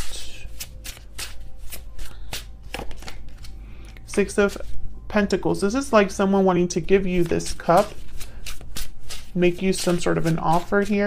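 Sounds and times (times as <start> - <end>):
cards being shuffled: 0.0 - 4.7, 7.1 - 11.0
low steady hum: 0.0 - 11.0.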